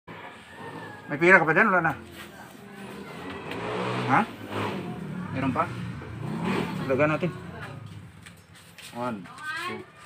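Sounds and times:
vehicle engine running: 0:00.1 - 0:09.4.

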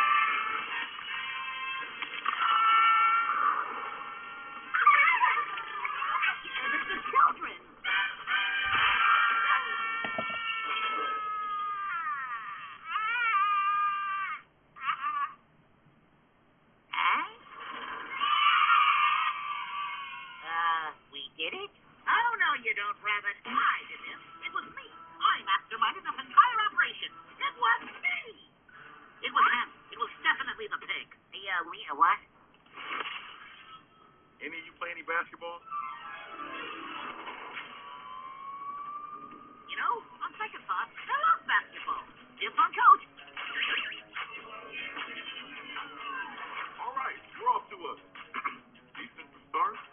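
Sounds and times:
cartoon characters screaming: 0:00.0 - 0:15.4, 0:18.0 - 0:20.9.

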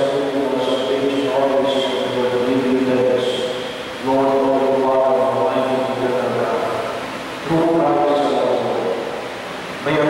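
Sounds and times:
man chanting a prayer: 0:00.0 - 0:09.1.

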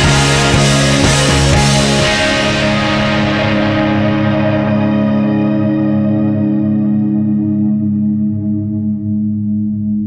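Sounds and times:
held chord ringing: 0:00.0 - 0:10.0.

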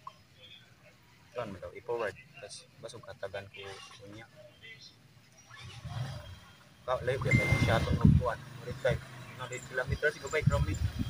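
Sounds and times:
man talking close to microphone: 0:06.9 - 0:11.0
steady high tone: 0:07.2 - 0:08.0.

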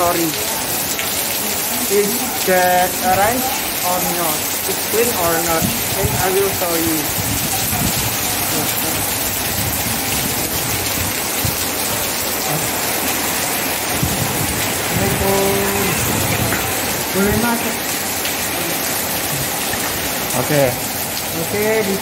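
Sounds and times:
steady rain falling: 0:00.0 - 0:22.0
person speaking: 0:12.4 - 0:12.9, 0:14.8 - 0:16.3, 0:17.0 - 0:17.9, 0:20.4 - 0:22.0.

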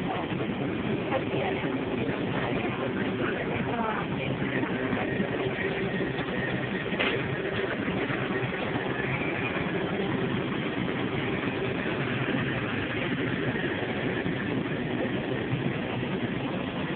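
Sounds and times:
mechanical hum and rumble: 0:00.0 - 0:16.9.

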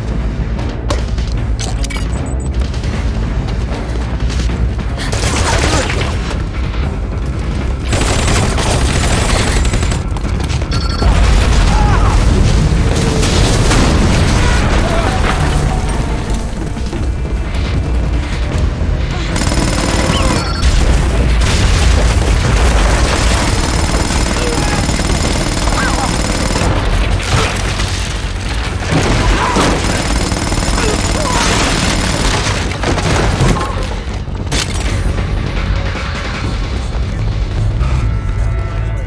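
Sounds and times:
film score music: 0:00.0 - 0:39.0
crashing debris: 0:08.3 - 0:18.1, 0:20.5 - 0:35.0
loud explosion rumbling: 0:11.0 - 0:18.2, 0:19.4 - 0:25.2
gunfire: 0:19.3 - 0:33.9.

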